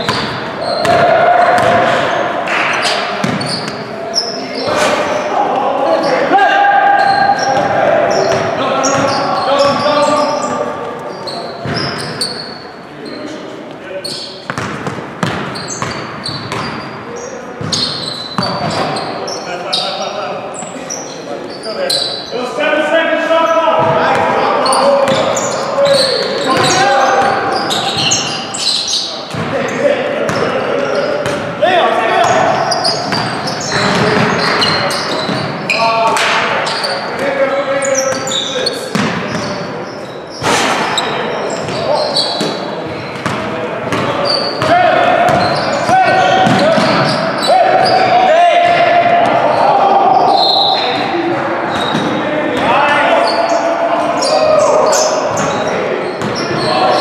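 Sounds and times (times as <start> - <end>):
basketball bouncing on wooden court: 0.0 - 2.0, 3.2 - 3.8, 14.5 - 16.9, 17.6 - 19.0, 32.2 - 35.6, 38.9 - 39.5, 42.4 - 47.2, 56.2 - 56.7
players shouting: 0.0 - 12.6, 22.0 - 40.0, 40.6 - 57.0.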